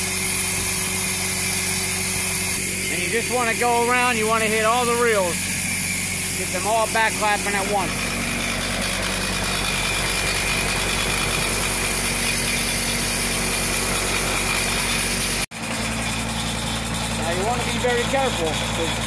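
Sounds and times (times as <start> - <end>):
mower reels running: 0.0 - 19.0.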